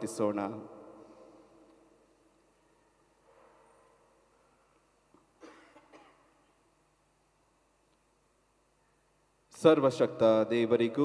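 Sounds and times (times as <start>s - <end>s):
person coughing faintly: 5.4s - 6.4s.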